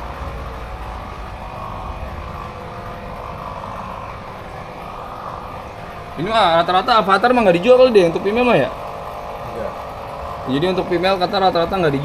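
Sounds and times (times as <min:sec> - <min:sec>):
low mechanical drone: 0:00.0 - 0:12.0.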